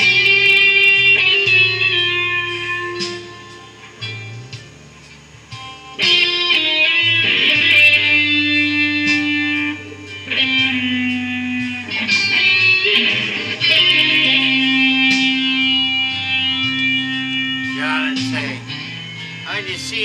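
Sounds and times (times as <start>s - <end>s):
electric guitar lead: 0.0s - 20.0s.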